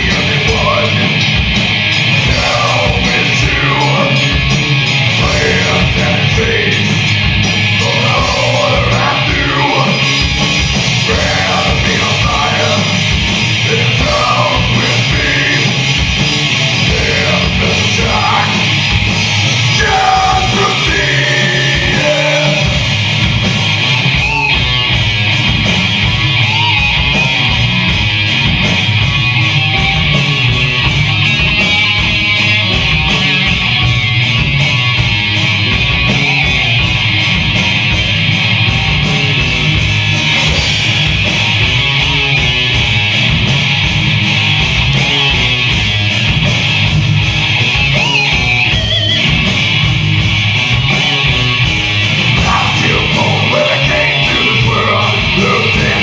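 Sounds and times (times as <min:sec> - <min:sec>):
bass guitar: 0:00.0 - 0:56.0
drums with steady cymbal beat: 0:00.0 - 0:56.0
electric guitars strummed: 0:00.0 - 0:56.0.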